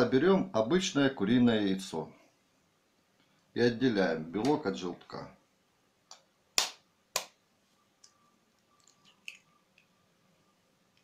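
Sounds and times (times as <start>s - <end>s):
egg shell cracking: 8.6s - 10.0s.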